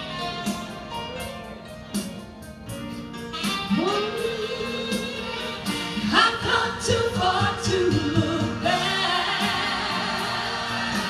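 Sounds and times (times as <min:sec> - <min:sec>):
instrumental accompaniment: 0:00.0 - 0:11.0
woman singing gospel song: 0:06.0 - 0:11.0
choir backing voices: 0:06.4 - 0:11.0.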